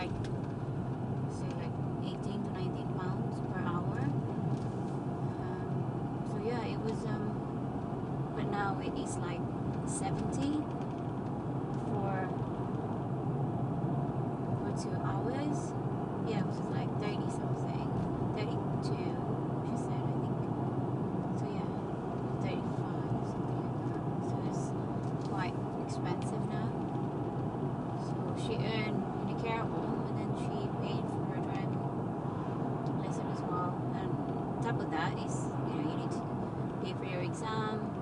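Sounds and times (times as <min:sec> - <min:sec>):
car cabin road noise: 0:00.0 - 0:38.0.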